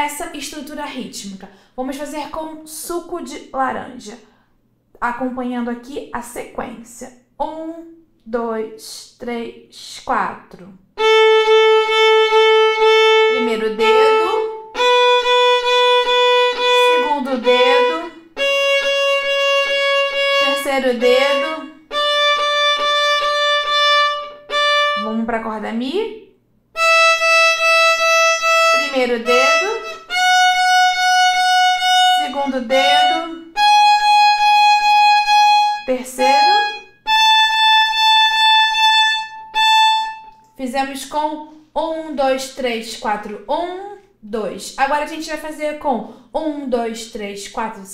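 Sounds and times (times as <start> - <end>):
woman's voice: 0.0 - 4.3, 5.0 - 10.8, 13.3 - 14.6, 16.8 - 18.2, 20.4 - 21.8, 25.0 - 26.3, 28.8 - 30.1, 32.1 - 33.6, 35.9 - 36.8, 40.6 - 47.9
violin playing scale: 11.0 - 25.2, 26.8 - 40.5.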